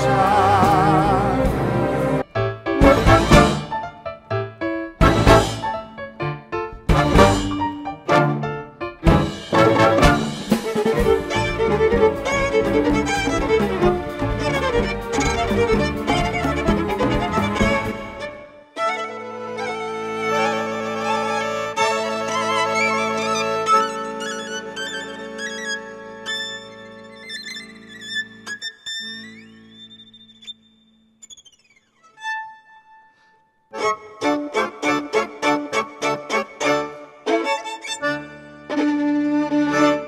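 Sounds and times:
orchestra chords: 0.0s - 3.9s, 5.0s - 6.2s, 6.9s - 26.9s
accordion chords: 0.0s - 4.0s, 5.0s - 27.4s, 33.7s - 40.0s
solo violin with vibrato: 10.5s - 30.6s, 31.2s - 40.0s.

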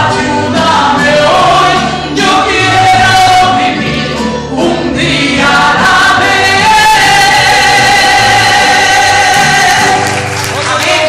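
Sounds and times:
woman singing into microphone: 4.6s - 10.1s.

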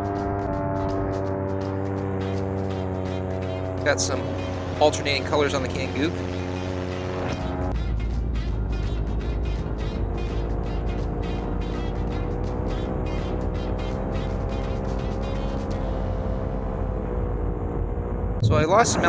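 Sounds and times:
paramotor engine running: 0.0s - 19.0s.

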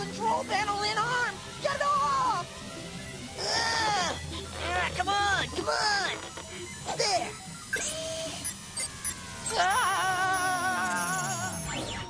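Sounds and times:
background music: 0.0s - 7.9s
steady electronic tone: 6.4s - 12.0s.

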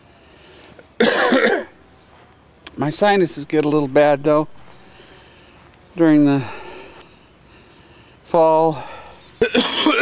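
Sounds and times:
person coughing: 1.0s - 1.7s, 9.4s - 10.0s.

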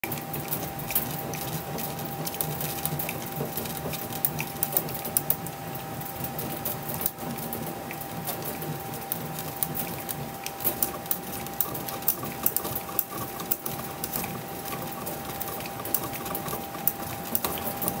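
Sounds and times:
machine rollers humming: 0.0s - 18.0s.

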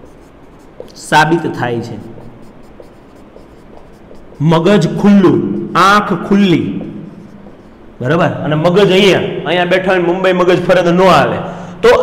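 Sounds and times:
marker scratching on whiteboard: 0.0s - 8.1s.

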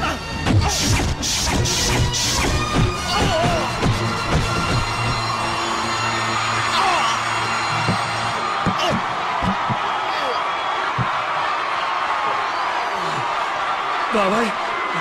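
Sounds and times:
background film music: 0.0s - 8.6s
sharp hit sounds: 0.4s - 5.6s
arena crowd shouting: 2.6s - 15.0s.

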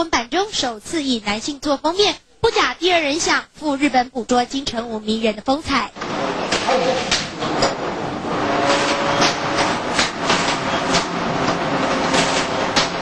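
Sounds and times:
busy noise bed: 0.0s - 13.0s.

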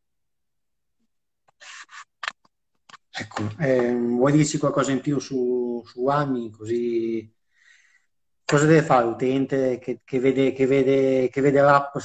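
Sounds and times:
person speaking: 1.5s - 7.4s, 8.4s - 12.0s.

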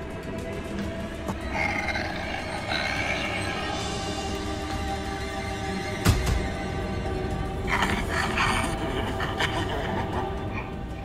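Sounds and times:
eerie droning score: 0.0s - 11.0s
rough breathy creature vocals: 1.3s - 4.2s, 7.6s - 11.0s.

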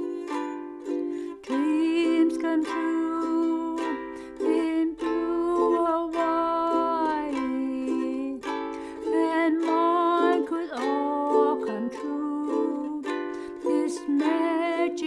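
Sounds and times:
woman singing: 0.0s - 0.5s, 1.2s - 15.0s
ukulele strumming: 0.0s - 15.0s.

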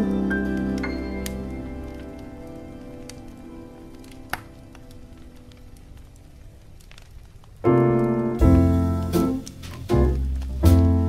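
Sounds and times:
wood fire crackling: 0.0s - 11.0s
jazz tune: 7.6s - 11.0s.

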